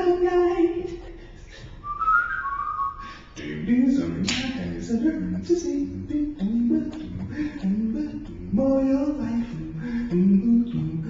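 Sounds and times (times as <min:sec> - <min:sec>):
person whistling: 0:01.8 - 0:03.3.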